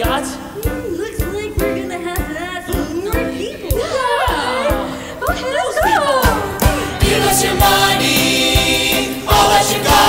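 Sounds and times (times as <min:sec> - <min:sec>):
musical theatre backing track: 0:00.0 - 0:10.0.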